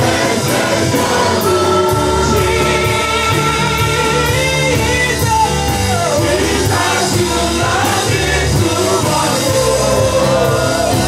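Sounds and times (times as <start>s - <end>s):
bass line: 0.0s - 11.0s
church worship band music: 0.0s - 11.0s
people singing: 0.0s - 11.0s.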